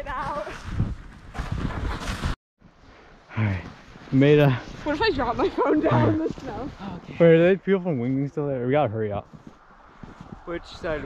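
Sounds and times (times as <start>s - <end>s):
wind on microphone: 0.0s - 2.4s, 9.2s - 11.0s
footsteps in deep snow: 0.0s - 8.3s, 9.2s - 11.0s.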